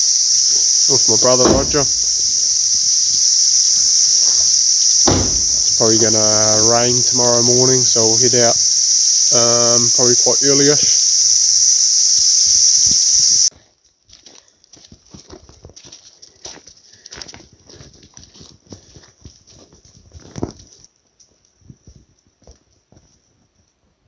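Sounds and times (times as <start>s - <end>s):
insects buzzing: 0.0s - 13.5s
footsteps on dirt track: 13.5s - 23.7s.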